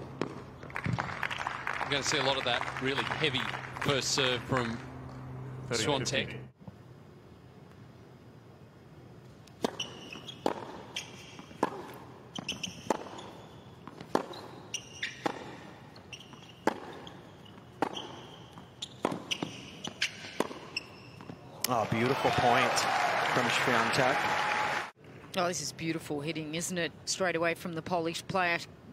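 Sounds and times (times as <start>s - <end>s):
crowd applause: 0.7s - 4.9s, 21.7s - 24.9s.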